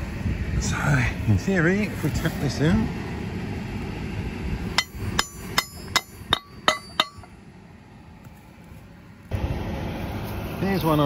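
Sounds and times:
hammer striking metal: 4.7s - 7.4s.

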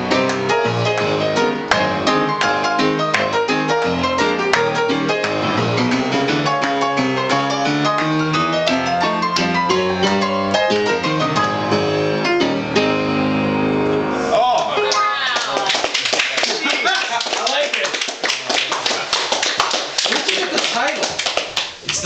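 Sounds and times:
upright piano playing ragtime: 0.0s - 14.2s, 14.8s - 15.2s
small group applauding: 0.2s - 3.4s, 14.5s - 22.0s.

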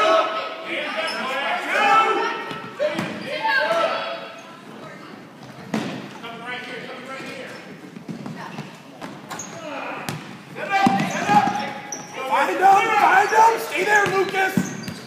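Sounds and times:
voices calling out: 9.3s - 15.0s.

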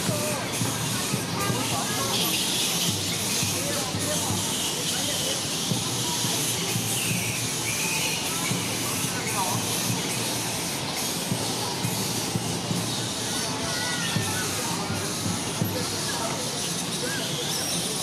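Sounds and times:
flying foxes calling and squabbling: 0.0s - 18.0s.

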